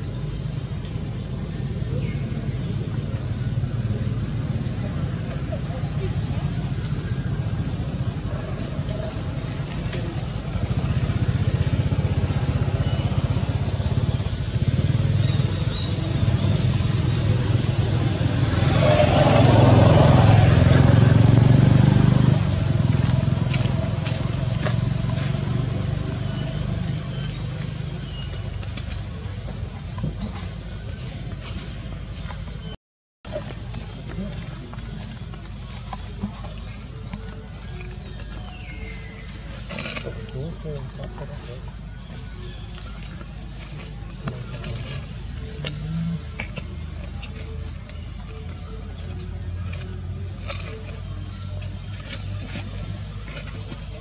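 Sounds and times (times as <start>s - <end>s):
vehicle engine drone: 0.0s - 54.0s.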